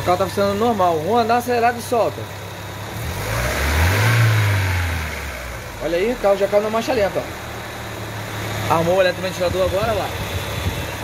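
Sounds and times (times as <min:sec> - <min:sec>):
car engine revving: 0:02.5 - 0:11.0.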